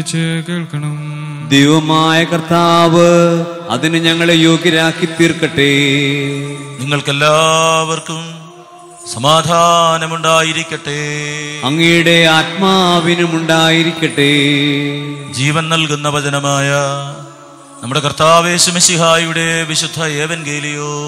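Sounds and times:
man chanting: 0:00.0 - 0:21.0
low sustained drone note: 0:02.2 - 0:21.0.

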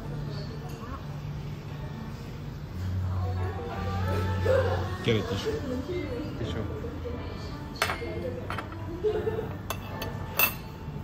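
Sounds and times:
tableware clink: 0:07.7 - 0:08.9, 0:09.6 - 0:11.0.

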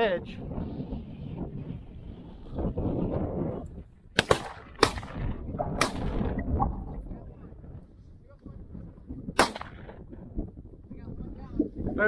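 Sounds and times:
low rumble of wind: 0:00.0 - 0:12.0
shotgun shots: 0:04.2 - 0:06.3, 0:09.3 - 0:10.0.

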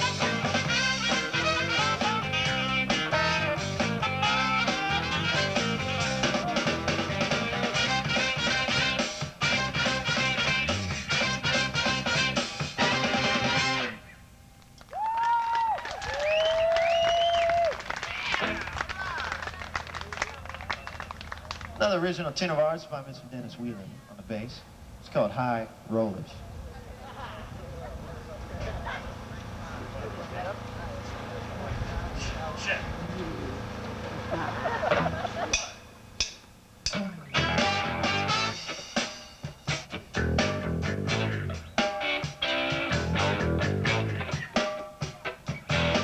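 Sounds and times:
crowd murmur: 0:00.0 - 0:09.0, 0:26.3 - 0:35.8
funk band chord: 0:00.0 - 0:14.1, 0:27.9 - 0:46.0
crowd noise: 0:00.0 - 0:14.2, 0:16.0 - 0:24.8, 0:25.6 - 0:36.2, 0:36.9 - 0:46.0
people clapping: 0:14.8 - 0:22.1
long gliding whistles: 0:14.9 - 0:17.7.

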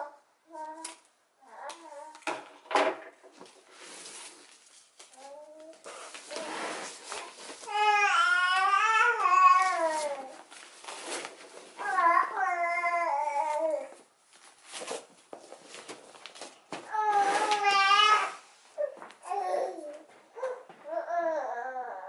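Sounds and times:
young child babbling and crying: 0:00.0 - 0:02.2, 0:07.6 - 0:10.4, 0:11.8 - 0:14.0, 0:16.9 - 0:22.0
ribbon rustling: 0:03.3 - 0:12.3.

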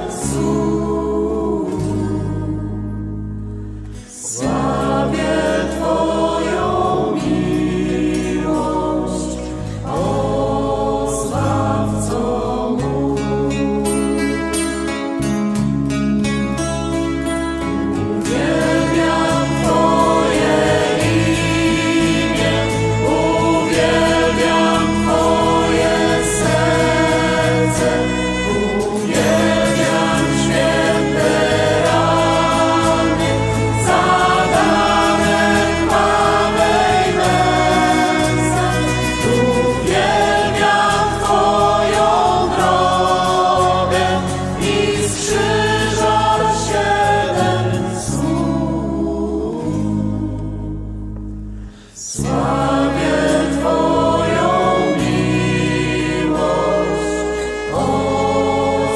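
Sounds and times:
voices singing worship song: 0:00.0 - 0:15.0, 0:18.0 - 0:58.9.

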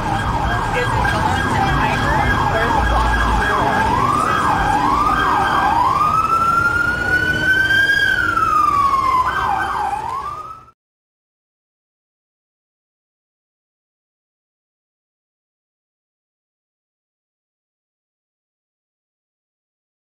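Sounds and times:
electronic siren wailing: 0:00.0 - 0:10.7.

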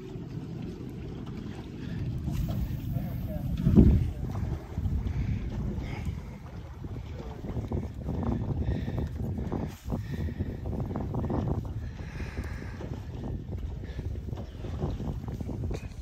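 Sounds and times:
wind buffeting microphone: 0:00.0 - 0:16.0.

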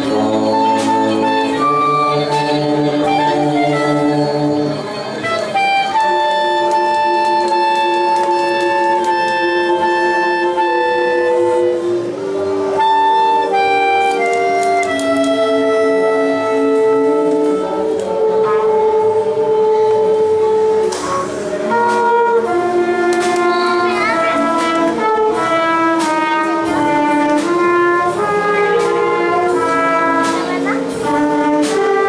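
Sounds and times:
brass and woodwind band playing: 0:00.0 - 0:32.0.

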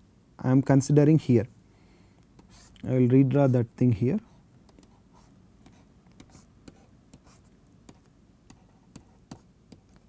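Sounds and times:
stylus tapping on tablet: 0:05.6 - 0:10.0.

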